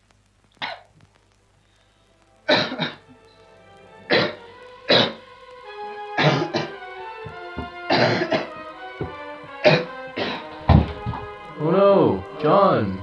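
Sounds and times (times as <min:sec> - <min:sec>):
soft held music notes: 0:00.0 - 0:13.0
man coughing harshly: 0:02.5 - 0:03.0, 0:04.1 - 0:05.2, 0:06.2 - 0:06.8, 0:07.9 - 0:08.6, 0:09.6 - 0:10.5.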